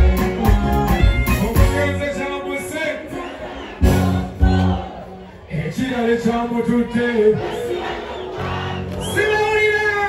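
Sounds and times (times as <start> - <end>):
concert crowd voices: 0.0 - 10.0
loud stage music: 0.0 - 10.0.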